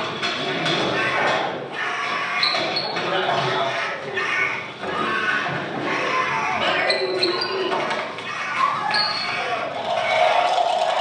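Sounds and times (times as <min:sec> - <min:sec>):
raised voices: 0:00.5 - 0:11.0
short high squeaks: 0:08.8 - 0:09.5.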